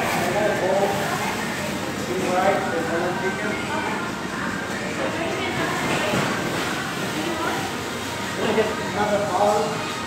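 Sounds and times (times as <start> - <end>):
restaurant background noise: 0.0 - 10.0.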